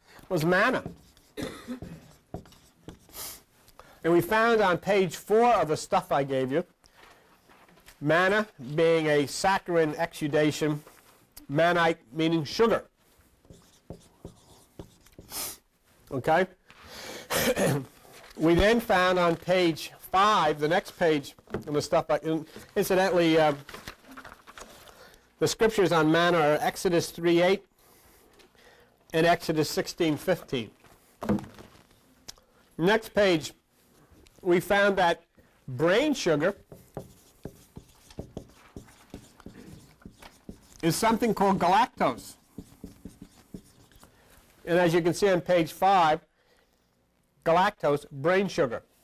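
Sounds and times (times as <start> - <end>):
faint scratching of writing: 0.3 - 3.4, 13.0 - 15.6, 36.3 - 44.4.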